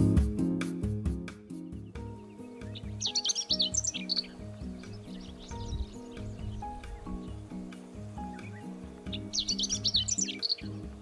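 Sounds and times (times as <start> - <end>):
background music: 0.0 - 11.0
bird twittering song: 1.5 - 11.0.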